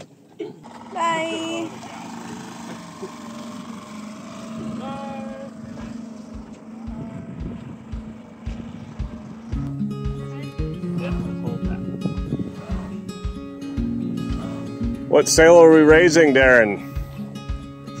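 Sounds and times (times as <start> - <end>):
faint voices calling: 0.0 - 13.3
outboard motor running: 0.0 - 18.0
acoustic guitar music with a beat: 6.3 - 18.0.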